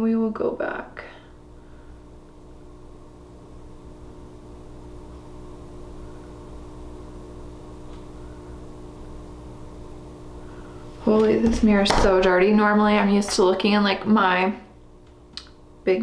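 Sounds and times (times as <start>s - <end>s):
low mechanical hum with held tones: 0.0s - 16.0s.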